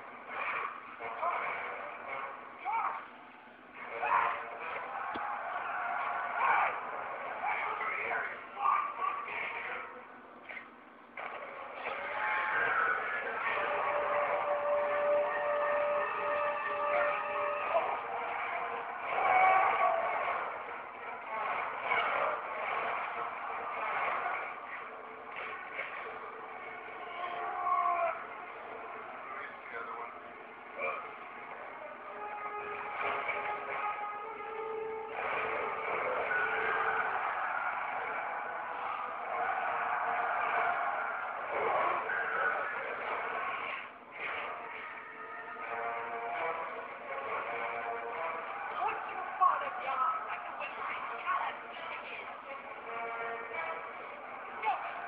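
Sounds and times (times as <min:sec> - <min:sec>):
action film sound effects: 0:00.0 - 0:55.0.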